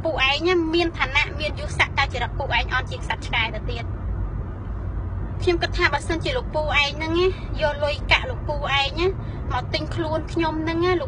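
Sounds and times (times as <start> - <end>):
woman speaking quickly: 0.0 - 3.8, 5.4 - 11.0
car interior rumble: 0.0 - 11.0.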